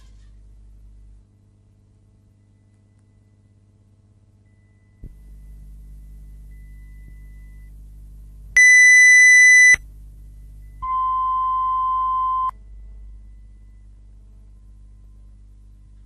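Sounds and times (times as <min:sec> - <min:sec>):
low hum: 0:00.0 - 0:16.0
low electronic beep tone: 0:08.6 - 0:14.4.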